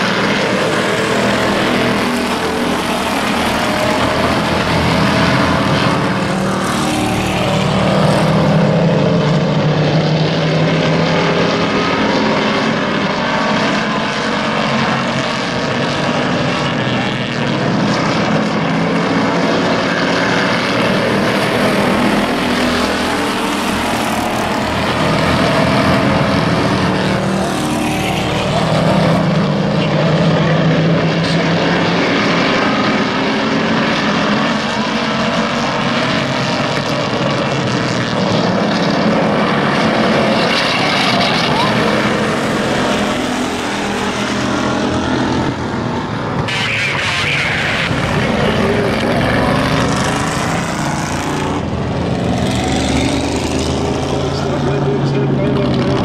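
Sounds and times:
race car engines passing: 0.0s - 56.0s.

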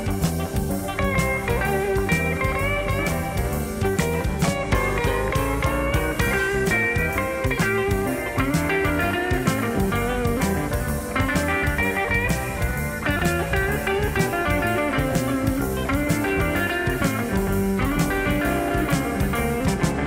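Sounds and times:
bass guitar: 0.0s - 20.0s
drum kit steady beat: 0.0s - 20.0s
electric guitar lead lines: 0.0s - 20.0s.

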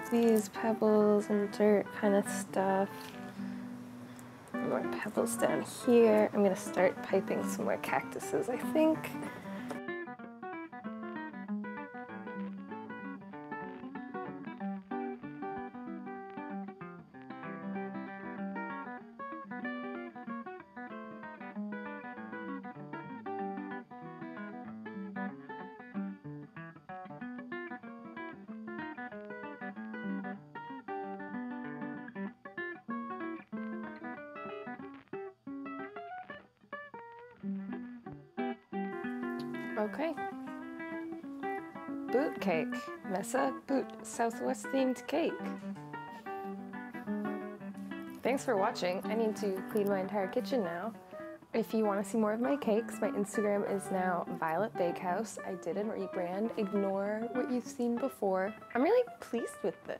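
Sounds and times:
acoustic guitar plucked notes: 0.0s - 59.9s.

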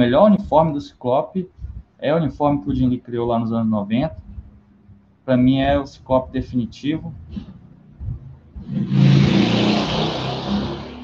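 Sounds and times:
vehicle engine: 6.1s - 11.0s.

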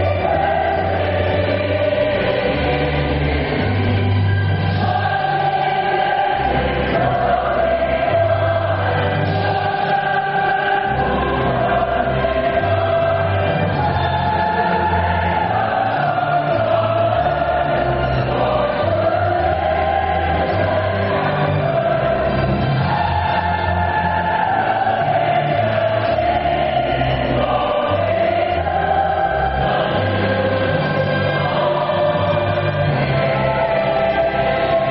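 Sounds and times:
choir singing: 0.0s - 34.9s.

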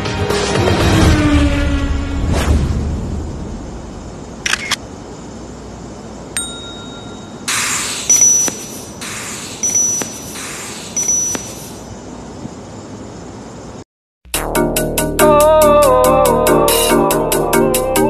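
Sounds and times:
hissy camera shutter bursts: 4.4s - 4.8s, 7.5s - 11.9s
short bell-like ding: 6.4s - 7.4s.

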